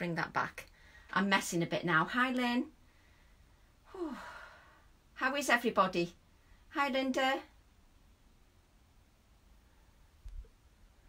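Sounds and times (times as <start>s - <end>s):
woman sighing: 3.9s - 4.8s.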